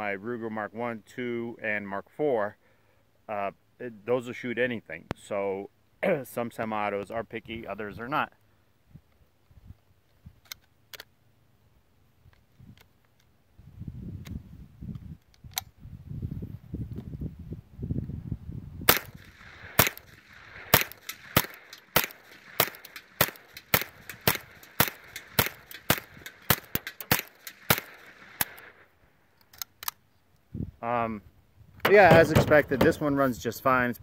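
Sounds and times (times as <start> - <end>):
gun handling clicks: 10.0 - 11.2, 14.2 - 15.8, 18.9 - 30.5
gunshots with echo: 18.9 - 28.9, 31.9 - 33.3.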